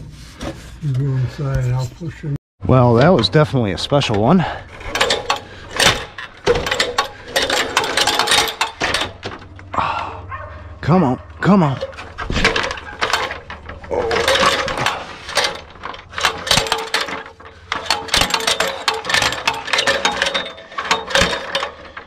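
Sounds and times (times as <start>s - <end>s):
ladder sliding and rattling: 2.8s - 22.0s.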